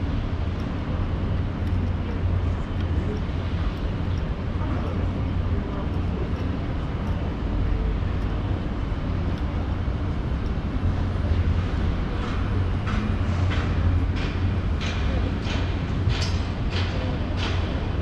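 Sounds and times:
road traffic rumble: 0:00.0 - 0:18.0.

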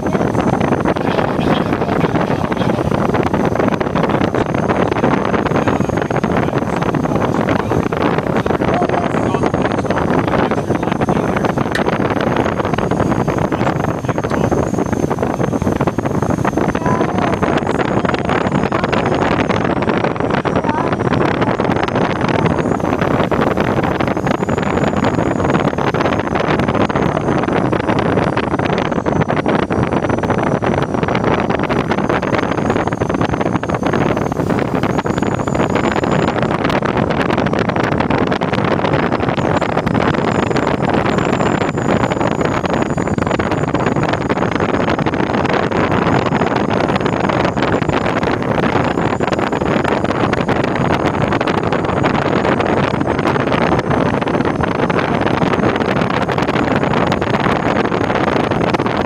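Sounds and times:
rush of air over glider: 0:00.0 - 0:59.0.

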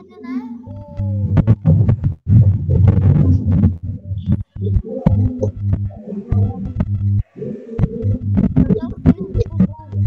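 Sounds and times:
child reading aloud distorted: 0:00.0 - 0:01.9, 0:08.6 - 0:10.0.

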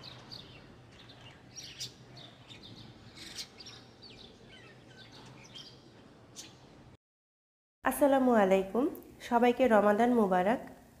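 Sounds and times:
small birds chirping: 0:00.0 - 0:06.8.

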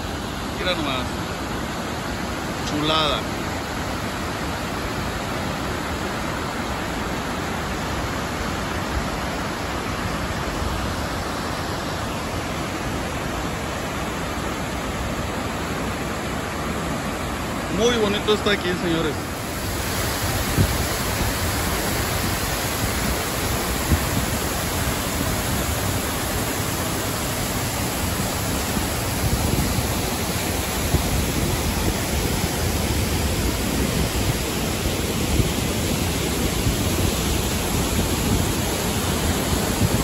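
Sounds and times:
water cascading over dam spillway: 0:00.0 - 0:40.0.

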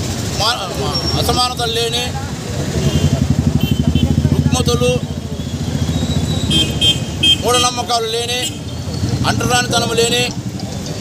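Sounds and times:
man speaking: 0:00.4 - 0:02.3, 0:04.2 - 0:05.2, 0:07.4 - 0:08.6, 0:09.2 - 0:10.4
vehicle engine running: 0:01.4 - 0:11.0.

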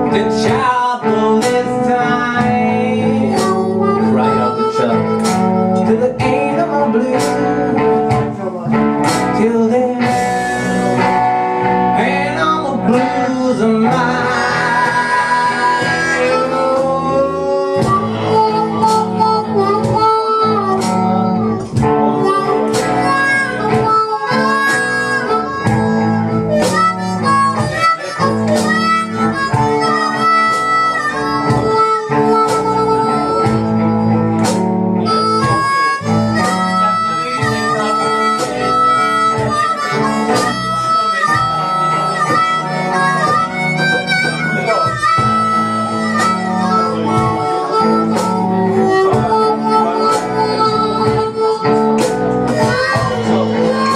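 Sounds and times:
bass guitar: 0:00.0 - 0:53.9
blues harmonica solo: 0:00.0 - 0:53.9
electric guitar: 0:00.0 - 0:53.9.

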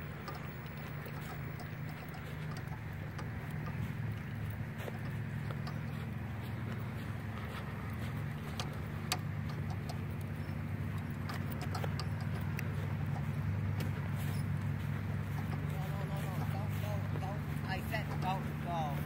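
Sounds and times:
clicks and rattles: 0:00.0 - 0:19.0
golf cart hum: 0:00.0 - 0:19.0.

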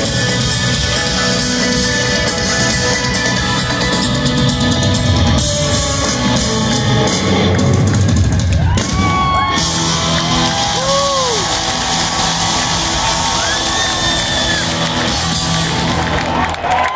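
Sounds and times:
live rock band: 0:00.0 - 0:16.9
crowd whooping and cheering: 0:07.0 - 0:16.9.

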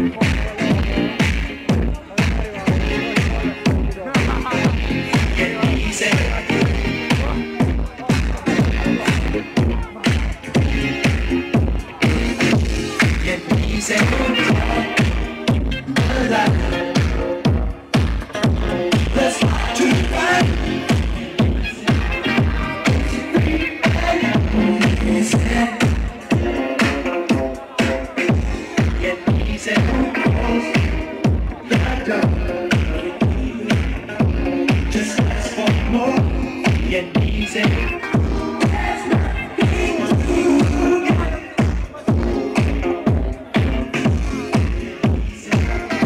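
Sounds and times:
house dance music over pa: 0:00.0 - 0:46.0.

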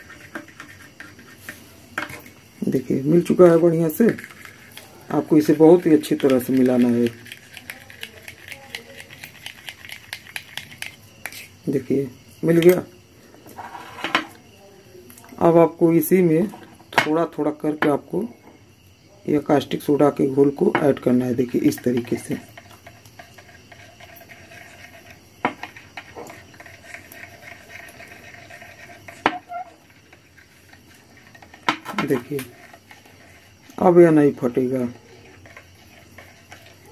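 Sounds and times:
spoon stirring in glass bowl: 0:00.0 - 0:11.5, 0:20.4 - 0:36.9.

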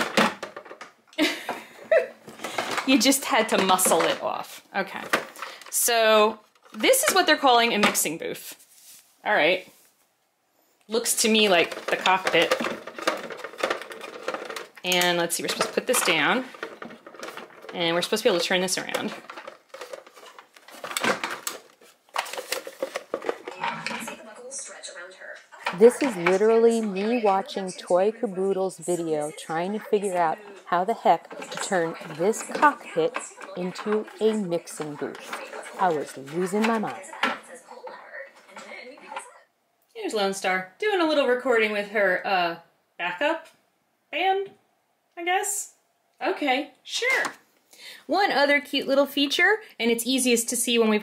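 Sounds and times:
plastic clatter and handling: 0:00.0 - 0:08.2, 0:11.0 - 0:24.8, 0:25.6 - 0:39.4.

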